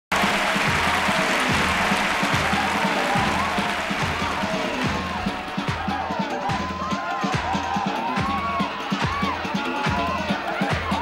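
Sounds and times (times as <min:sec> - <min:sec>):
audience applauding: 0:00.1 - 0:11.0
upbeat dance music: 0:00.1 - 0:11.0.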